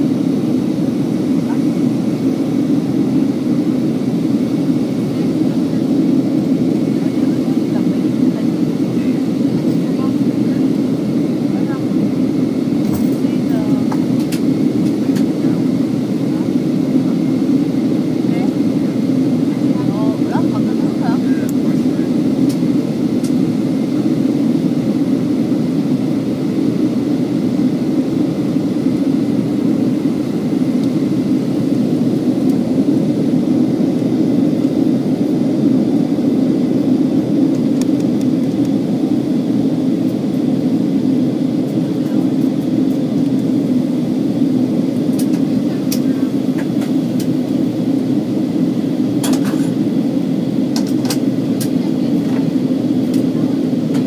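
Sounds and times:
airliner cabin roar: 0.0 - 54.0.

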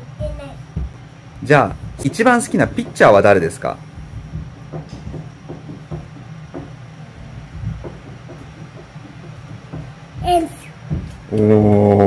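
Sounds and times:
low room hum: 0.0 - 12.0
soft knocks and thumps: 0.7 - 1.0, 3.9 - 11.3.

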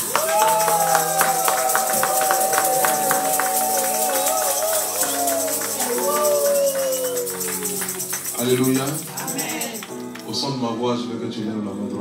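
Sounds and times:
keyboard sustained chord: 0.0 - 10.2
tambourine rhythm: 0.0 - 10.2.

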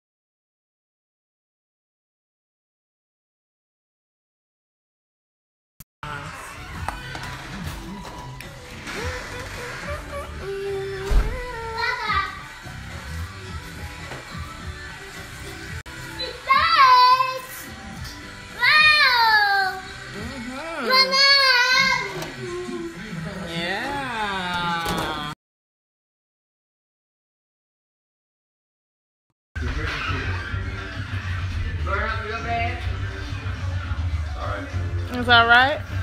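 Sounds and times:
music playing: 6.0 - 25.4, 29.6 - 36.0
person singing sliding melody: 8.8 - 11.7.

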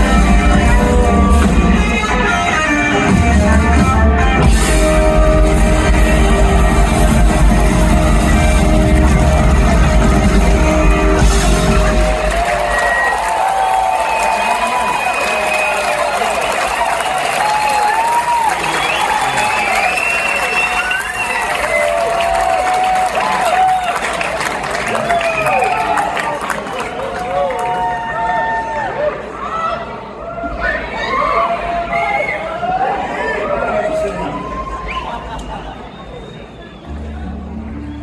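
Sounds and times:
live band chord: 0.0 - 12.6
audience cheering and whistling: 4.4 - 29.0, 30.4 - 38.0
applause: 7.3 - 28.8.

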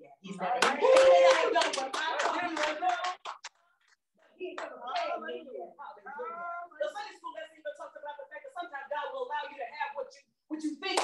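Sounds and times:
congregation clapping: 0.5 - 5.1.

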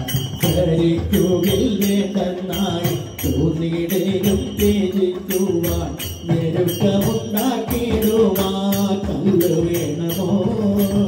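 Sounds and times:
group singing devotional song: 0.0 - 11.0
metallic jingling percussion: 0.0 - 11.0
tabla: 0.0 - 11.0.

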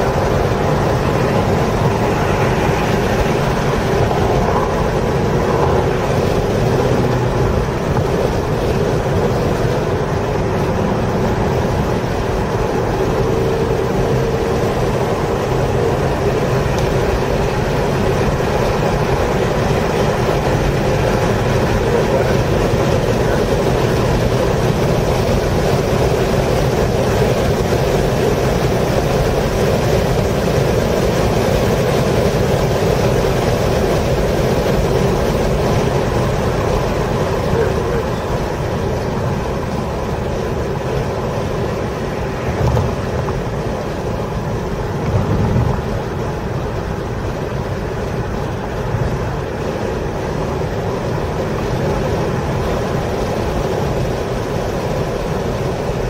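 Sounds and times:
car engine pulling at mid revs: 0.0 - 56.0
road and wind noise: 0.0 - 56.0.

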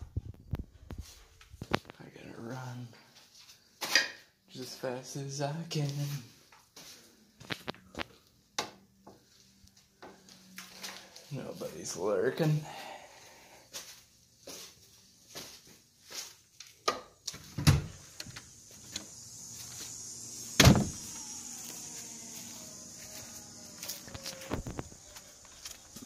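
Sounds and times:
high buzz of insects: 17.2 - 26.0
loud thumps: 20.6 - 21.1.

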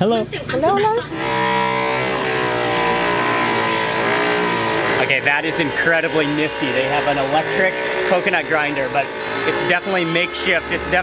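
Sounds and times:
coconut flesh rasping on blade: 1.1 - 11.0
electric motor whining: 1.1 - 11.0.

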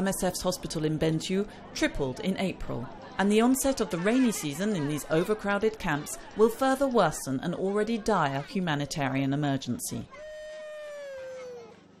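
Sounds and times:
young child wailing: 10.1 - 12.0.

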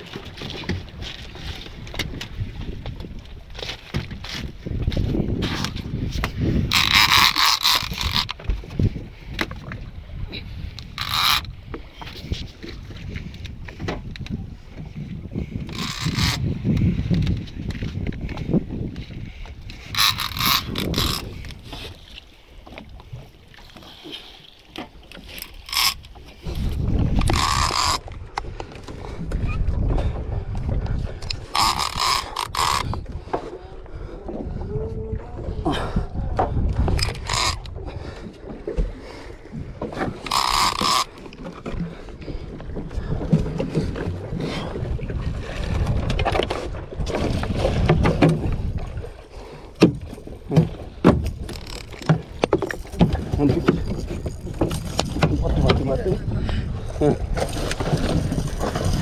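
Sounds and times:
fishing reel drag giving out line: 6.7 - 8.4, 10.9 - 11.6, 15.7 - 16.4, 19.8 - 21.5, 25.4 - 26.1, 27.1 - 28.0, 31.3 - 33.0, 37.0 - 37.7, 40.2 - 41.2.

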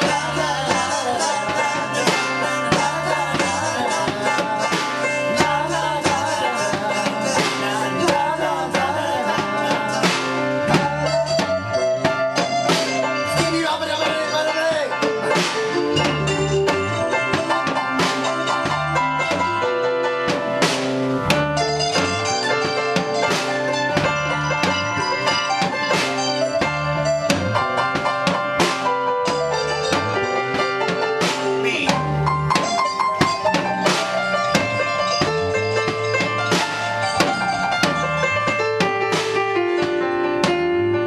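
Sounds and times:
bass line: 0.0 - 41.0
drum kit with cymbal hits: 0.0 - 41.0
electric guitars: 0.0 - 41.0
keyboard: 0.0 - 41.0.

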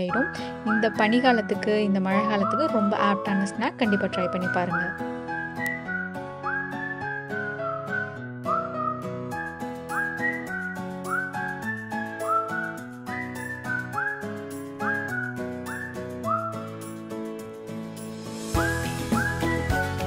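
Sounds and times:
whistled melody: 0.0 - 17.5, 18.4 - 20.0.

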